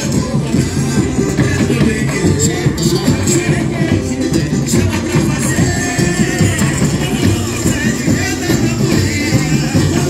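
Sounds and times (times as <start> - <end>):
samba music with dense percussion: 0.0 - 10.0.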